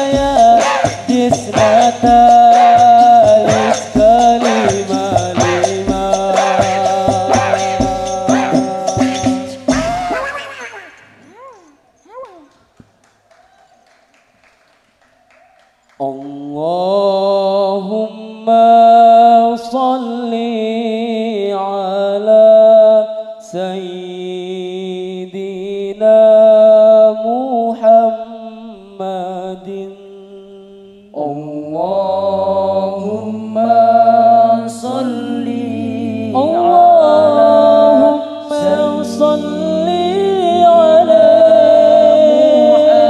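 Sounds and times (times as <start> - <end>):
man chanting: 0.0 - 9.2, 16.0 - 35.1, 35.8 - 43.0
men singing a cappella in harmony: 0.0 - 9.8, 16.0 - 43.0
low sustained bass voice: 36.3 - 43.0.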